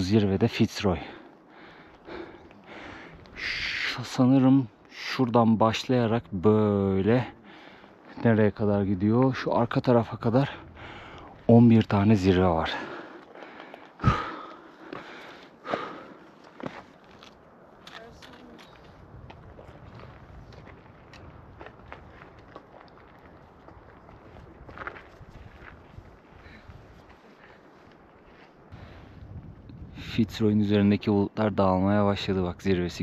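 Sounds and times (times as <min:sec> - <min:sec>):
faint outdoor background: 0:00.0 - 0:33.0
footsteps on gravel: 0:11.2 - 0:28.8.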